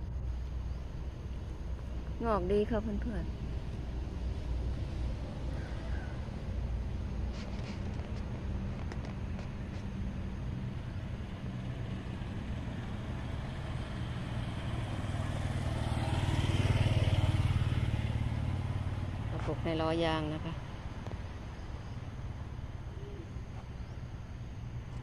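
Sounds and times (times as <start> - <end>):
vehicle engine humming: 0.0 - 25.0.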